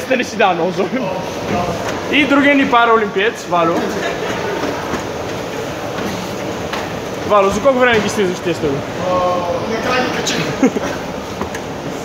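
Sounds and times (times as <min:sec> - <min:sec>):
indoor hall hum: 0:00.0 - 0:12.0.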